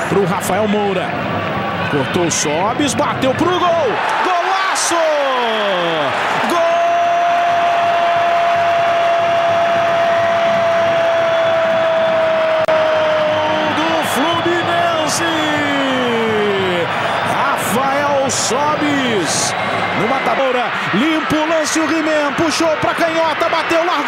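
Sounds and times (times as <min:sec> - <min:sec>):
stadium crowd roaring: 0:00.0 - 0:24.0
commentator shouting goal: 0:13.2 - 0:24.0.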